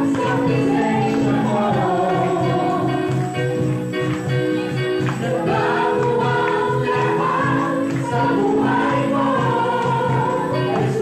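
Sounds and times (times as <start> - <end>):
instrumental accompaniment with bass beat: 0.0 - 11.0
women's choir singing: 0.0 - 11.0.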